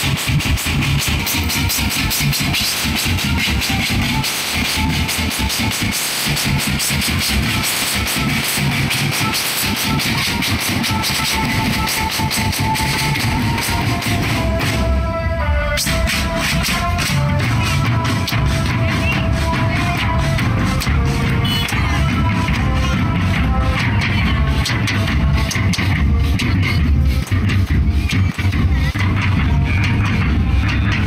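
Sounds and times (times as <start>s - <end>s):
snare drum strokes: 0.0s - 15.0s, 15.8s - 31.0s
bass drum beats: 0.0s - 31.0s.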